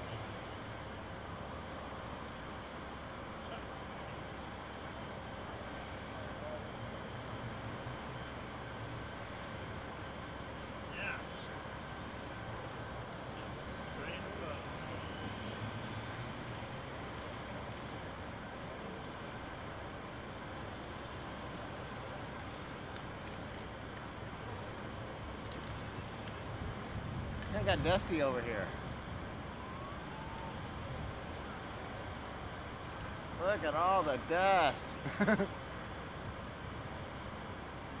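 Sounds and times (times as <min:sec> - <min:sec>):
outdoor city background noise: 0:00.0 - 0:38.0.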